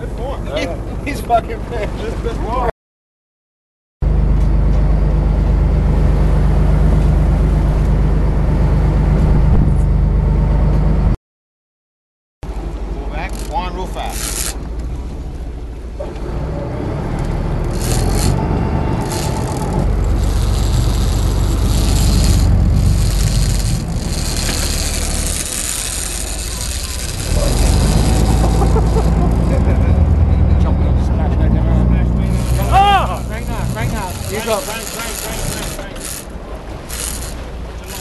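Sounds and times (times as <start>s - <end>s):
boat engines rumbling: 0.0s - 2.7s, 4.0s - 11.1s, 12.5s - 38.0s
indistinct voices: 25.9s - 36.3s.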